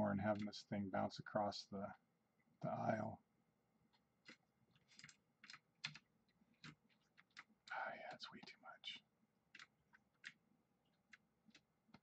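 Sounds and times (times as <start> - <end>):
computer keyboard keystrokes: 4.2 - 7.8, 9.5 - 10.4.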